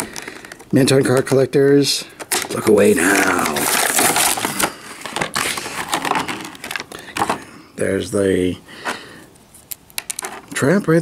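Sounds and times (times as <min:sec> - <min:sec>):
plastic packaging crackling: 0:00.0 - 0:01.4, 0:02.1 - 0:07.5.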